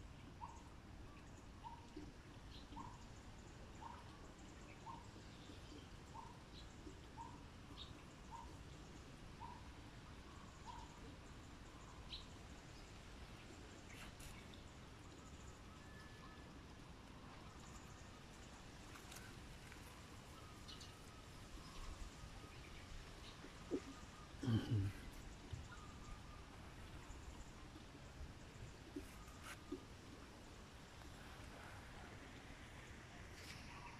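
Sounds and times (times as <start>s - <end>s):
bird chirping: 19.0s - 27.6s.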